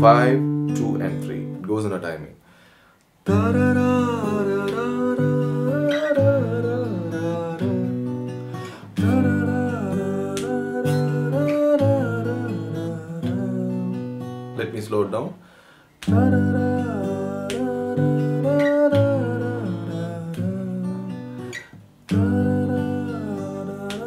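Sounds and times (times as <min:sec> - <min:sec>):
fingerpicked acoustic guitar: 0:00.0 - 0:01.8, 0:03.2 - 0:24.0
man singing: 0:03.3 - 0:08.1, 0:09.0 - 0:15.2, 0:16.0 - 0:21.5, 0:22.1 - 0:24.0.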